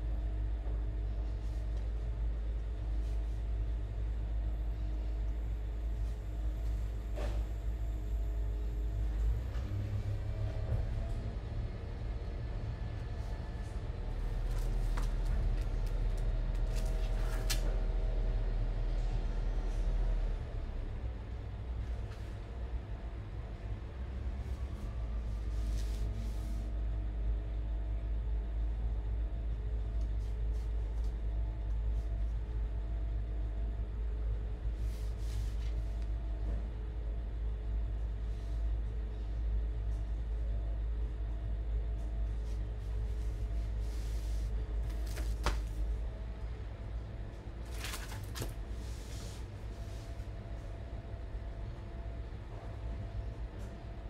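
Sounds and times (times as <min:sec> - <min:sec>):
low rumble with hum: 0:00.0 - 0:54.0.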